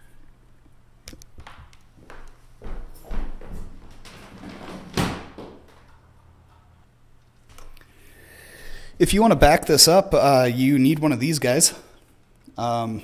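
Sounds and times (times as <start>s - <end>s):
objects knocking and thudding: 2.6s - 6.8s.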